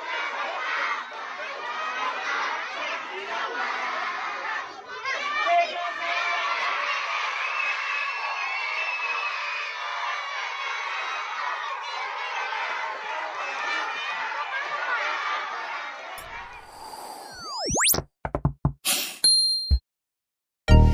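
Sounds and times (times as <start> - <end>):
children chattering and calling out: 0.0 - 5.5
whoosh with sweeping pitch: 16.5 - 18.0.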